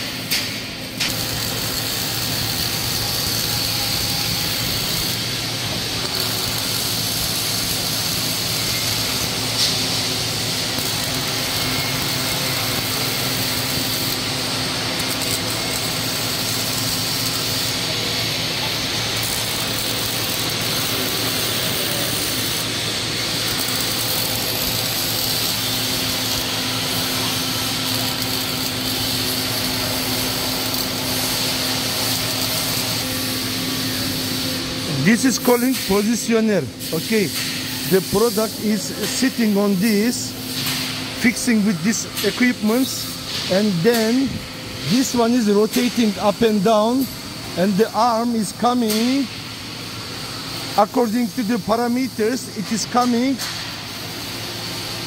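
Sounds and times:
arc welding: 0.0 - 55.0.

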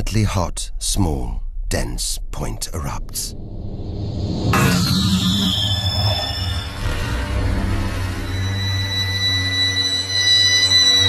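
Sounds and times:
high whine gliding down: 3.3 - 11.0
music: 6.6 - 11.0.

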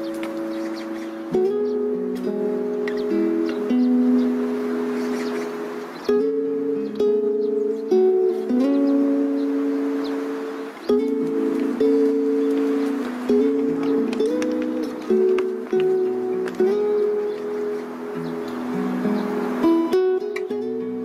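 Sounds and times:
strummed acoustic string chords: 0.0 - 21.0.

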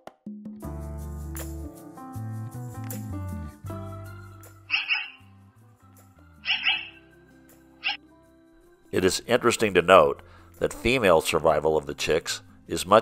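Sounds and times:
background music: 0.2 - 13.0
magpies calling harshly: 4.7 - 5.3, 6.4 - 7.1.

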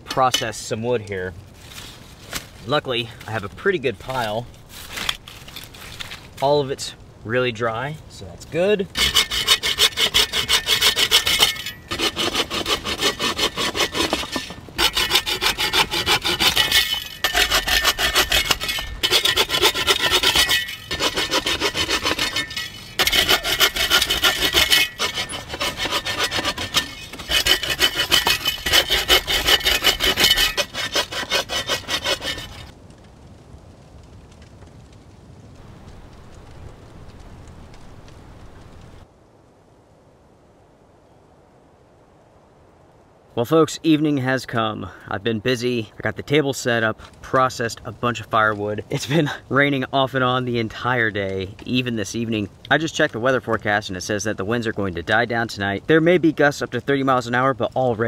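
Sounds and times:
bow saw cutting logs: 9.0 - 32.7.

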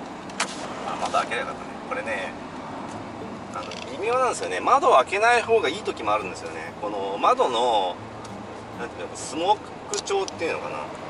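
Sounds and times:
road and engine noise in cabin: 0.0 - 11.0.

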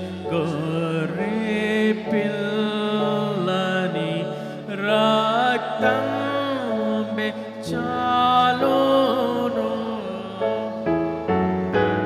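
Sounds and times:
man singing a hymn: 0.0 - 11.1.

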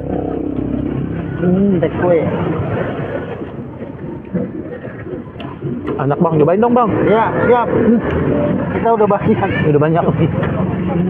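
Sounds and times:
murmur of passing traffic: 0.0 - 11.0.

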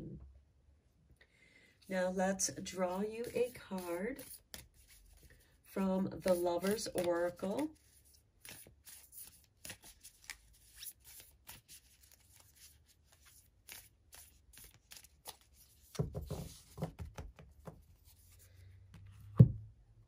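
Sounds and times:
cards being shuffled: 3.0 - 5.4, 6.2 - 18.5.

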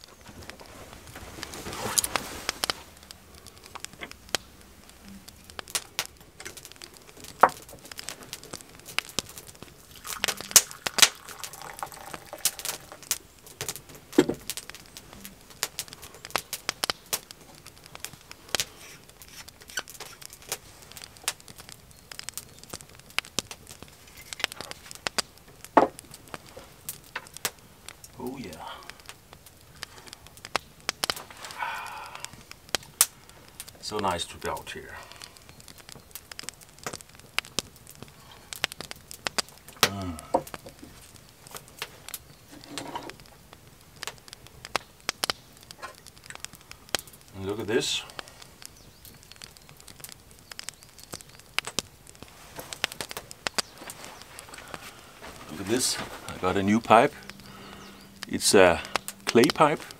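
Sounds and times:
wood fire crackling and popping: 0.0 - 59.9.

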